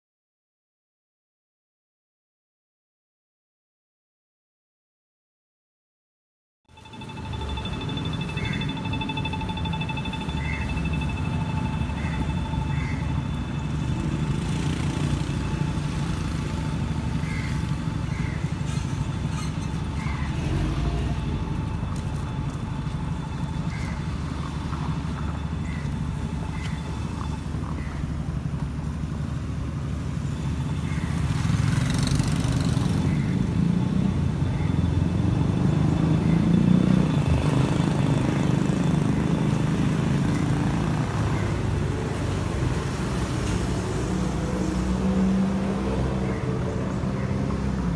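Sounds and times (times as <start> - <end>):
steady high whine: 6.7 - 30.8
traffic rumble: 6.8 - 47.9.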